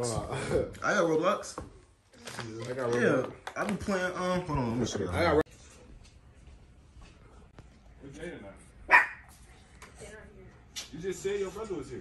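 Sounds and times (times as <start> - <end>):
dog barking: 8.9 - 9.3.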